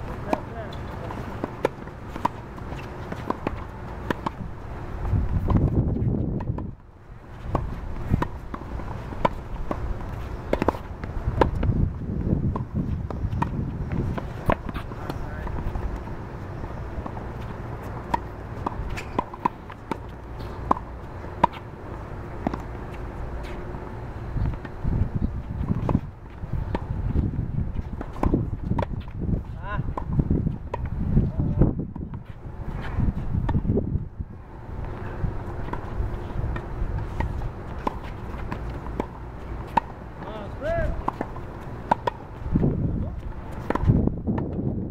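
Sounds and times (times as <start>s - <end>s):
tennis balls struck by rackets: 0.1s - 33.9s, 34.5s - 44.7s
shoes scuffing on hard court: 22.4s - 23.7s, 25.4s - 30.8s.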